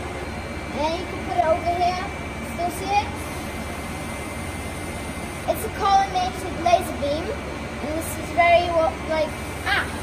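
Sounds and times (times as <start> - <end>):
cooling equipment air rush and hum: 0.0 - 10.0.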